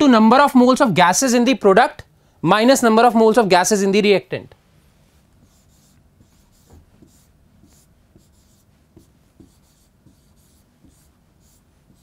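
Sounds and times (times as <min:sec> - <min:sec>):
chalk scratching on chalkboard: 0:05.3 - 0:12.0
chalk tapping on chalkboard: 0:05.4 - 0:12.0.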